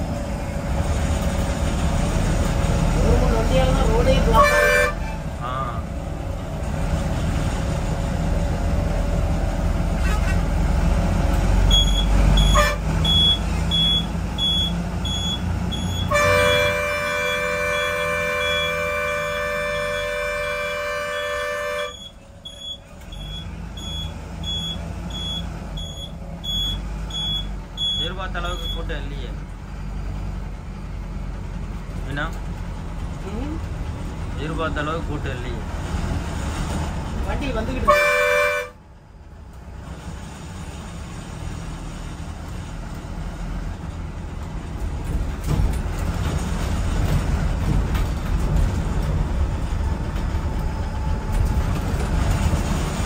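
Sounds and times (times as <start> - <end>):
bus engine running: 0.0 - 53.0
long horn blast: 4.2 - 5.3, 10.0 - 10.5, 12.4 - 13.0, 16.0 - 22.0, 37.8 - 38.8.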